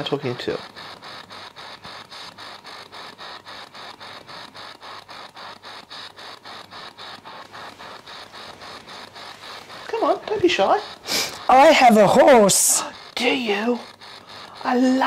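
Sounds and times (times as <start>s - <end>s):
rapid static pulses: 0.0s - 15.0s.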